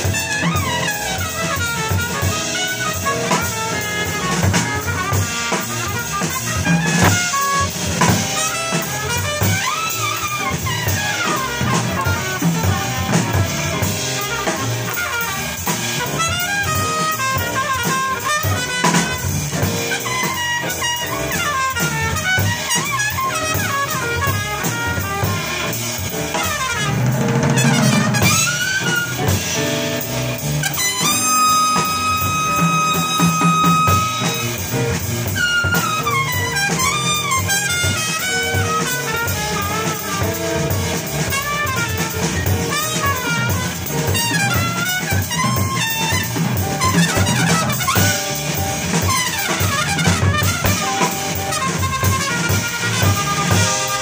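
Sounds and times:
drum kit with cymbals: 0.0 - 54.0
trumpet melody: 0.0 - 54.0.

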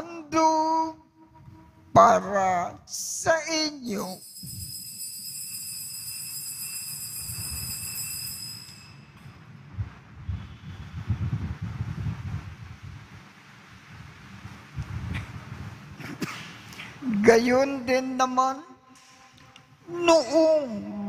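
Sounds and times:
altar bells ringing: 4.0 - 9.6
low rumble: 9.6 - 16.0.

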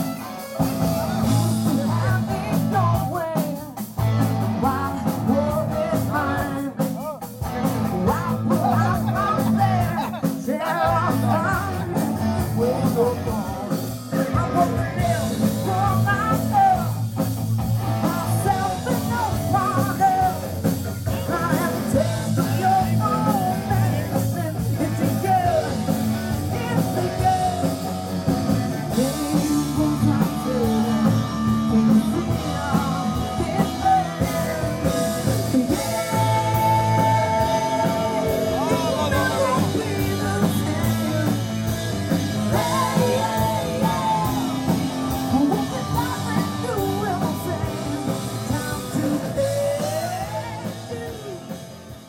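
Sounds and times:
electric guitars: 0.0 - 52.0
person singing: 0.0 - 52.0.

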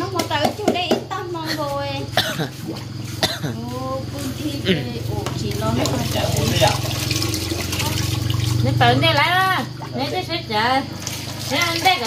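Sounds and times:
person coughing: 2.2 - 2.6, 3.2 - 3.6.

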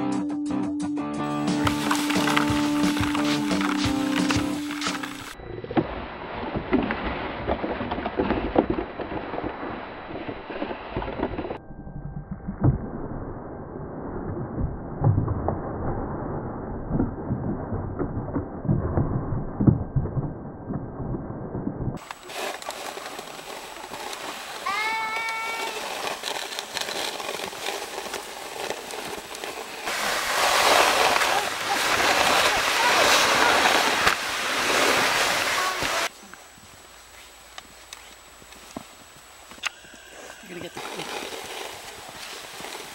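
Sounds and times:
toy trucks scraping through snow: 1.4 - 5.4, 22.0 - 36.1, 39.9 - 42.9
high voice: 24.6 - 25.9, 35.4 - 36.1.

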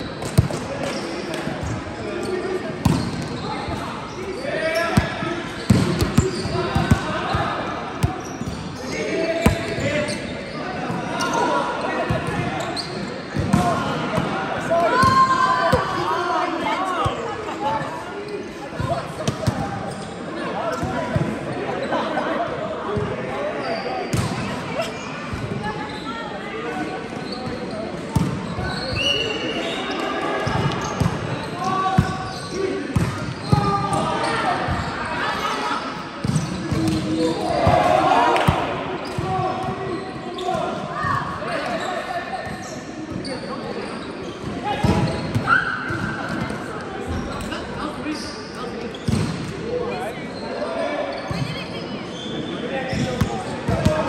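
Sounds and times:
players calling in echoing hall: 0.0 - 54.0.

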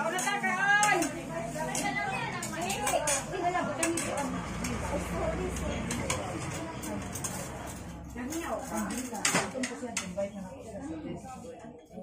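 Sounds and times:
plates and utensils clinking: 0.0 - 10.3
people talking: 0.0 - 12.0.

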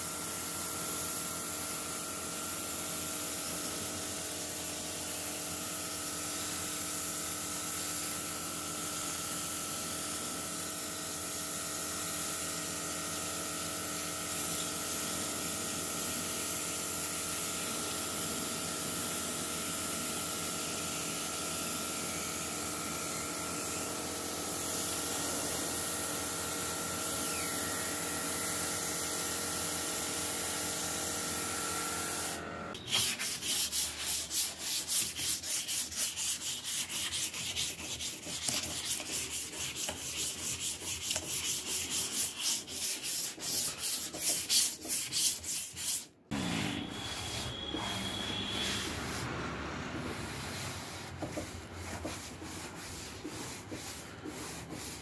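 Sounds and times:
hand-sanding rubbing strokes: 32.8 - 49.4, 50.0 - 55.0.

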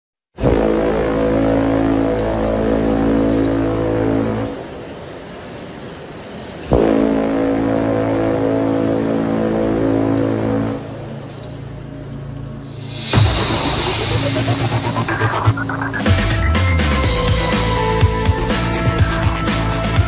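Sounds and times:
deep horn-like drone: 0.4 - 4.8, 6.7 - 16.0
sharp low hit: 12.8 - 18.2.

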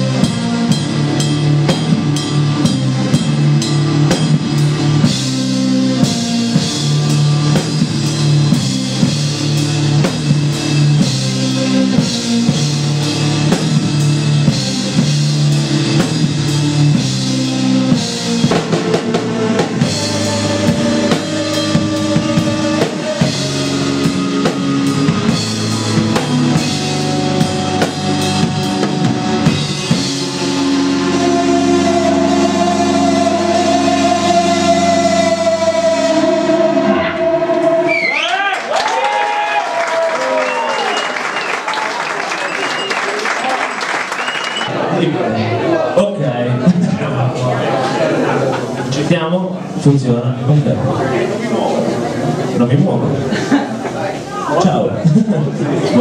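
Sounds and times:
keyboards: 0.0 - 38.5
drum kit: 0.0 - 39.4.

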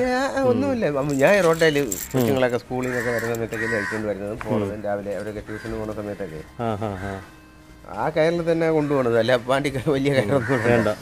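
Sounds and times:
man talking: 0.0 - 6.8.

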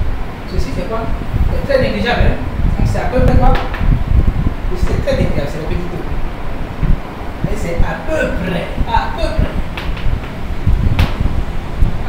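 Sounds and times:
wind buffeting microphone: 0.0 - 12.0
sharp tap: 3.5 - 4.0, 9.8 - 11.3.

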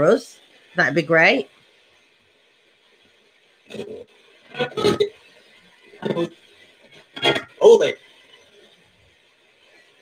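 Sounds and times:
chopped radio broadcast bursts: 3.6 - 8.8
radio static: 3.6 - 8.8.

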